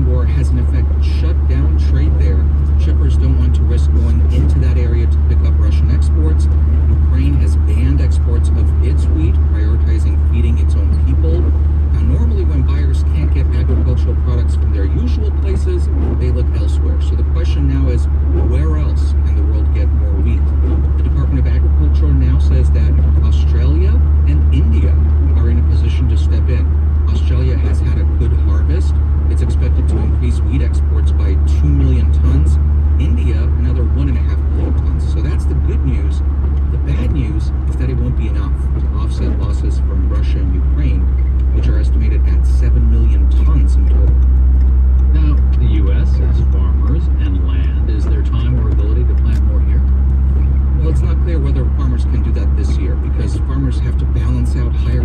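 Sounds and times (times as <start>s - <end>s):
faint radio voice talking: 0.0s - 44.2s, 45.1s - 49.8s
car road and engine drone: 0.0s - 55.0s.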